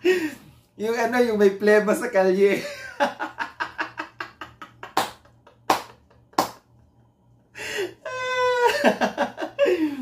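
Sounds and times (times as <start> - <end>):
man laughing hard: 2.6 - 6.3, 7.6 - 10.0.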